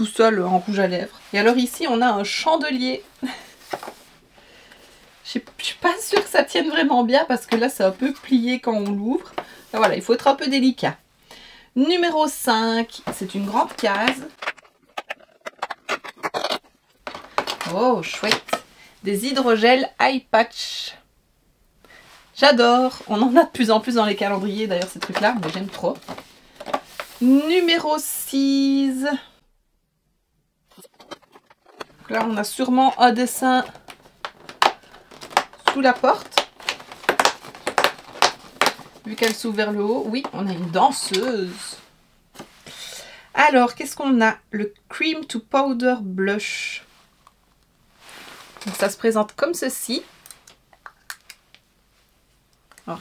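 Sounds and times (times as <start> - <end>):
cardboard crackling and snapping: 33.5 - 39.4.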